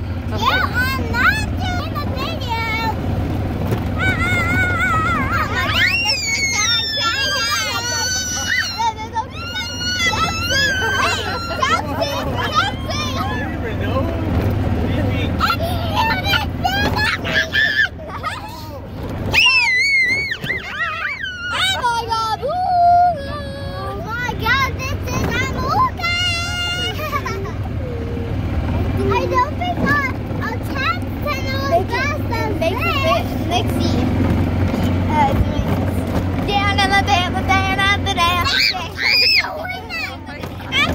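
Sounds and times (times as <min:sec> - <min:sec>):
cart motor droning: 0:00.0 - 0:40.9
children's voices and squeals: 0:00.0 - 0:40.9
go-kart rumbling on dirt: 0:00.0 - 0:40.9.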